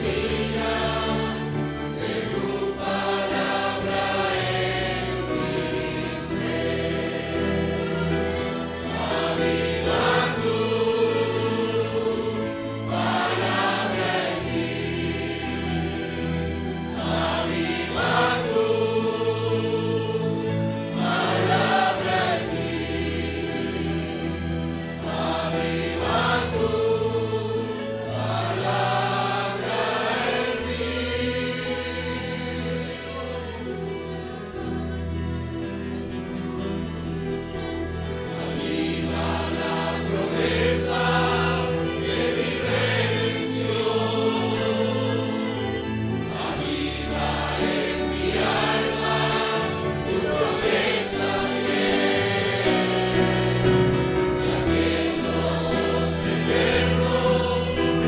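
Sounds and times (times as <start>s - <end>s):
congregation singing a hymn: 0.0s - 58.0s
instrumental accompaniment: 0.0s - 58.0s.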